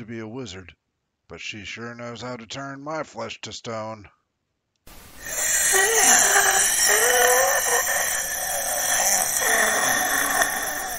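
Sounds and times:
shrill creature scream: 5.2 - 10.9.

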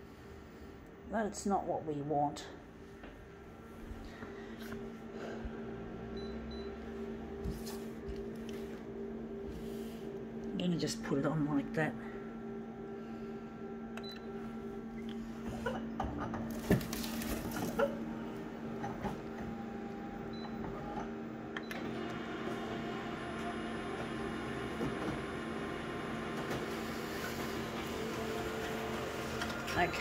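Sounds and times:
photocopier humming: 3.3 - 30.0
photocopier mechanism whirring: 16.4 - 30.0.

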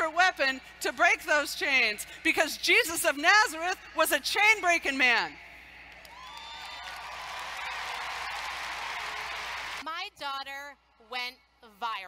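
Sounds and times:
audience applauding: 5.9 - 9.8.

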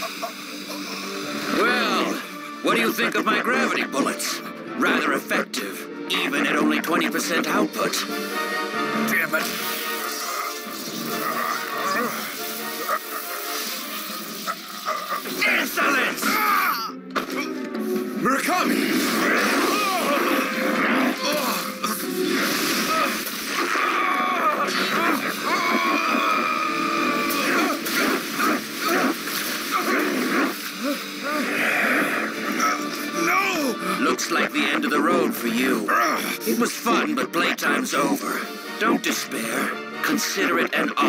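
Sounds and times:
dramatic background music: 0.0 - 41.0
wordless cries and groans: 8.7 - 13.8, 14.4 - 17.7, 18.4 - 34.3, 35.8 - 36.6
energy blast sound effects: 18.6 - 24.0.

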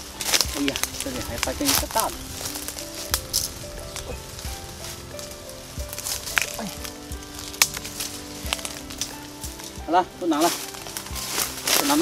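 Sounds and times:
leaf litter and twigs crackling: 0.0 - 12.0
soft background music: 0.0 - 12.0
sharp twig snaps: 6.0 - 9.8.

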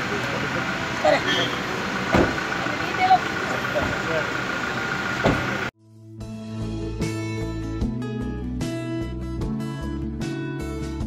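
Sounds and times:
people talking: 0.0 - 1.6, 2.2 - 4.5
traffic: 0.0 - 5.7.

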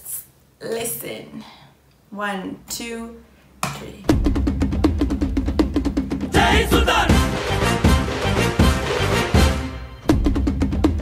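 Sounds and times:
fast drumbeats: 4.0 - 11.0.

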